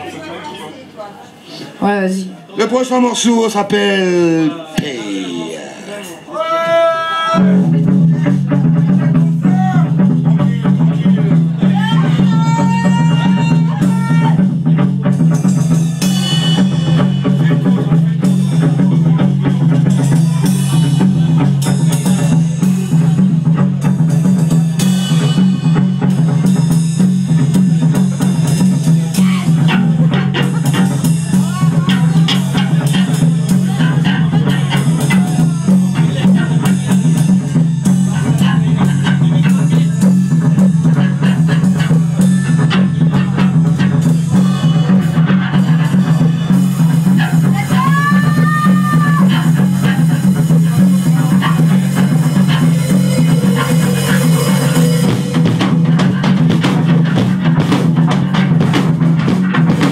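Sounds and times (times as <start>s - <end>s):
loud rock band playing live: 4.8s - 59.9s.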